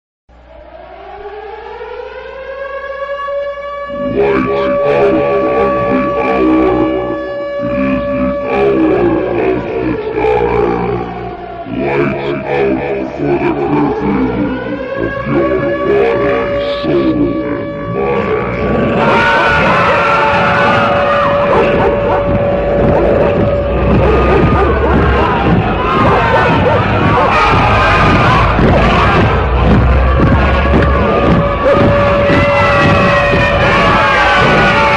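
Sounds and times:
sliding wavering pitches and noise: 3.9 - 34.9
steady held tone: 13.1 - 34.8
siren winding up: 13.9 - 34.9.

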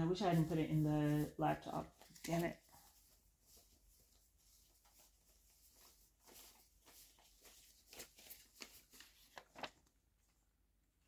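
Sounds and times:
faint clicks and rustles: 1.8 - 10.4.

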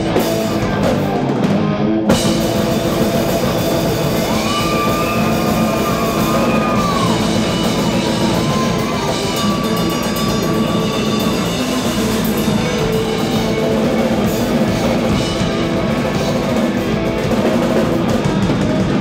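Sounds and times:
rock band playing loud: 0.0 - 19.0.

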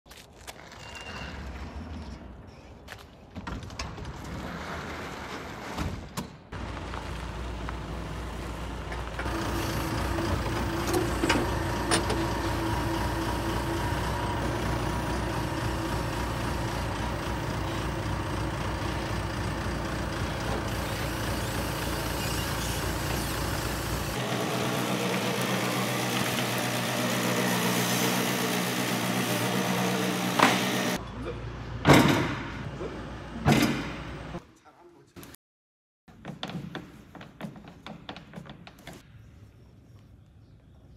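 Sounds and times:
truck engine running: 6.6 - 31.0.

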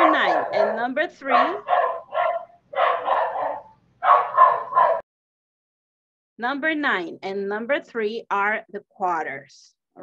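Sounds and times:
dog barking: 0.0 - 5.0.

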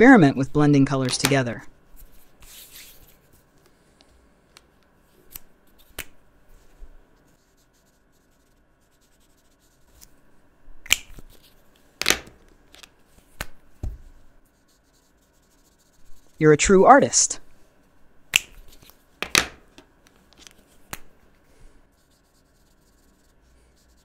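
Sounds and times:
marker scratching on paper: 2.0 - 3.4, 7.3 - 10.1, 14.4 - 17.3, 21.9 - 24.0.

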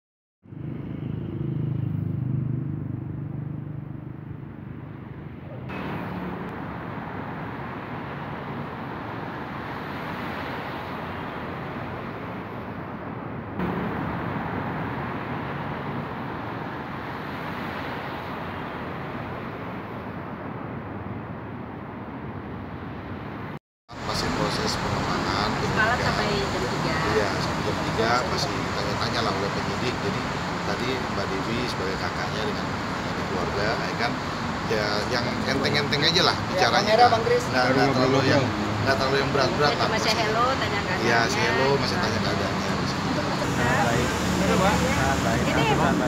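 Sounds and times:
street traffic noise: 0.4 - 46.0.

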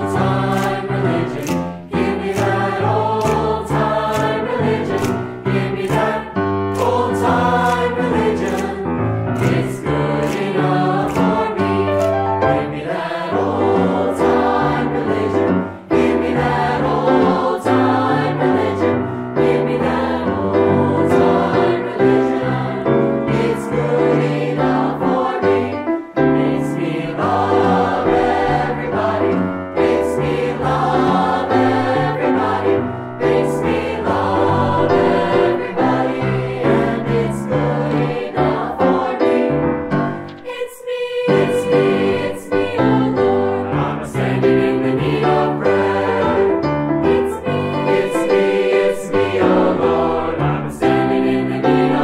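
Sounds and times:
mixed choir singing: 0.0 - 52.0
piano: 0.0 - 52.0.

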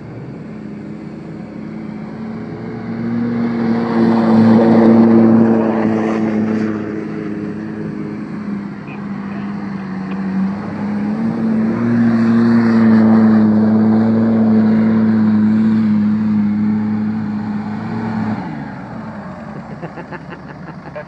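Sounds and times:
car engine revving high: 0.0 - 21.0.

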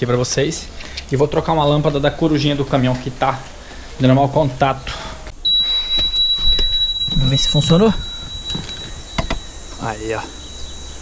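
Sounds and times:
high-pitched warning buzzer: 5.4 - 11.0.

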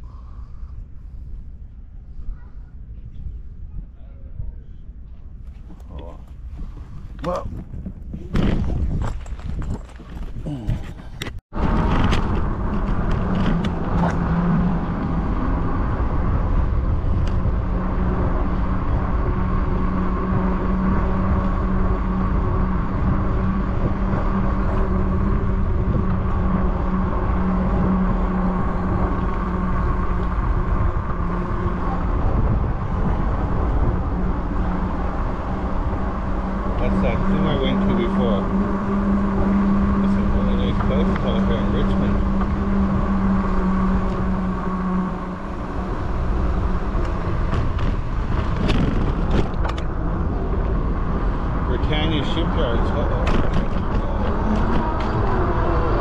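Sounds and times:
steady low hum: 0.0 - 56.0
wind rumbling on microphone: 0.0 - 56.0
tyres rolling on pavement: 17.6 - 56.0.

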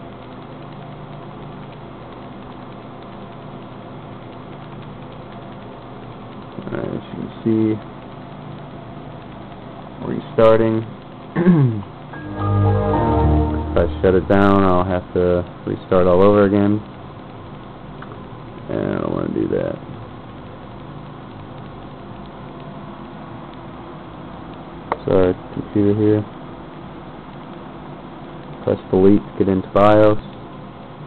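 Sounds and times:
computer cooling fans humming: 0.0 - 31.0.

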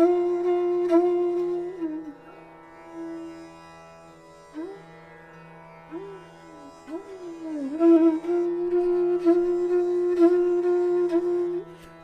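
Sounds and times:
bamboo flute low note: 0.0 - 2.1, 6.9 - 11.9.

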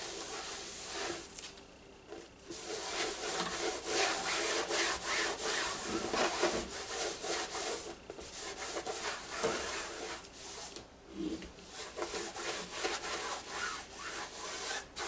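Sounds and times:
cloth wiping canvas: 0.0 - 1.3, 2.5 - 15.0.

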